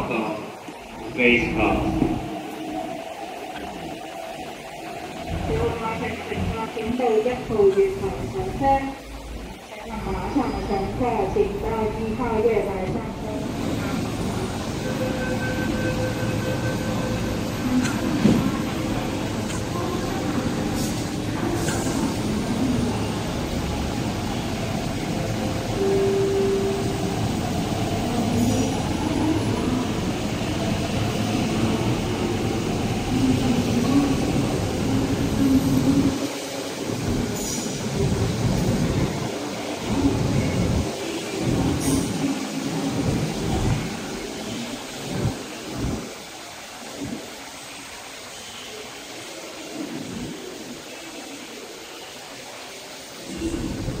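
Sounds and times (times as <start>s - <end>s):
train motor and wheel noise: 0.0s - 54.0s.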